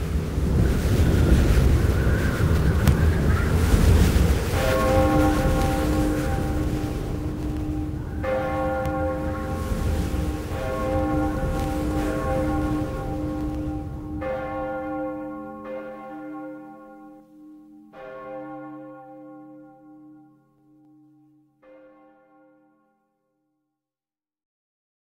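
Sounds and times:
low rushing noise: 0.0s - 15.6s
large bell tolling: 3.6s - 22.7s.

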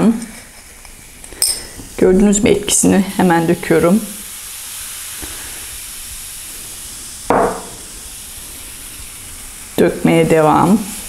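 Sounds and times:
foaming liquid pouring: 0.0s - 11.0s
vinegar fizzing: 0.0s - 11.0s.

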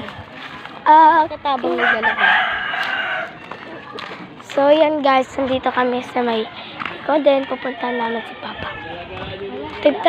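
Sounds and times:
rooster crowing: 1.8s - 3.7s, 7.3s - 9.0s.

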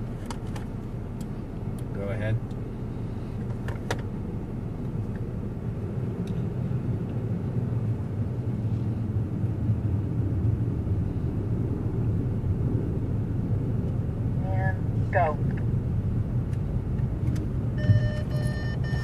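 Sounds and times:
car engine and road rumble: 0.0s - 19.0s.

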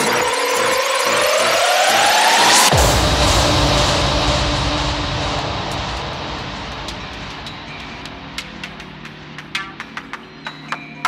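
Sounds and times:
dense noise wash with bass rumble: 2.3s - 9.9s.

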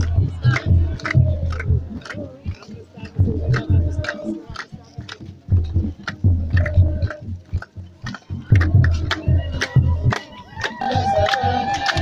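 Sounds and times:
crowd: 0.0s - 12.0s
drum beats: 0.0s - 12.0s
hand claps: 0.0s - 12.0s.

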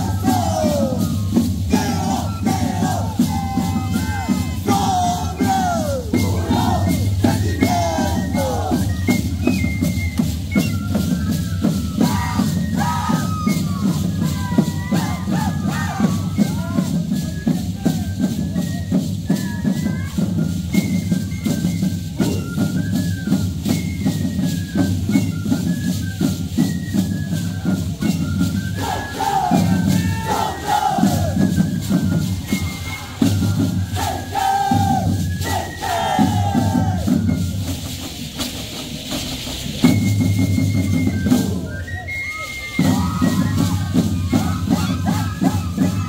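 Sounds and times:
voices shouting together: 0.0s - 8.9s, 12.0s - 16.9s, 28.8s - 31.4s, 32.9s - 37.1s, 42.8s - 46.0s
steady drum beat: 0.0s - 20.1s, 28.8s - 41.7s
high flute melody: 0.0s - 38.2s, 39.6s - 46.0s.

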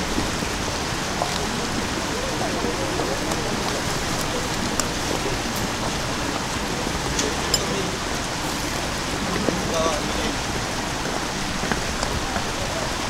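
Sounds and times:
shallow water rushing: 0.0s - 13.0s.

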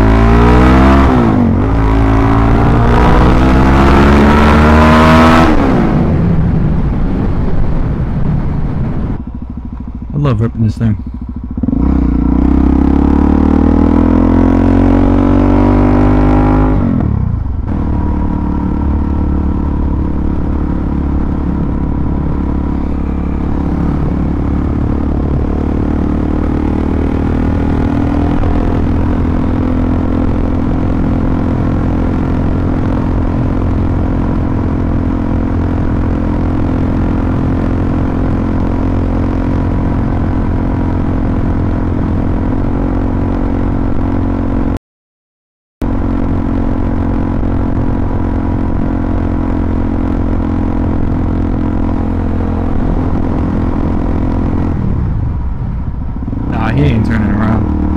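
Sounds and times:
motorcycle engine accelerating: 0.0s - 44.8s, 45.8s - 57.9s.

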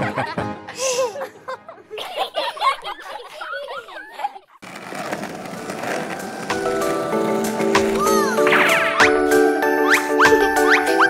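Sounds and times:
cartoon voices laughing: 0.0s - 4.6s, 9.8s - 11.0s.

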